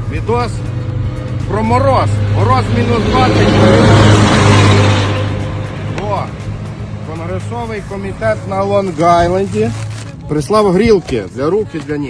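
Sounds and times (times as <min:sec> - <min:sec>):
background music with low note: 0:00.0 - 0:12.0
road vehicle passing by: 0:00.0 - 0:12.0.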